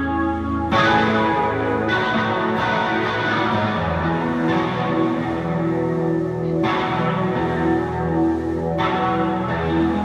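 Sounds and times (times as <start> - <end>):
electric guitars playing chords: 0.0 - 10.0.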